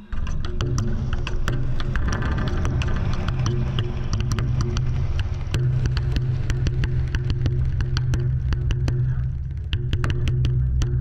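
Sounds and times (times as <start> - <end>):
steady low electronic drone: 0.0 - 11.0.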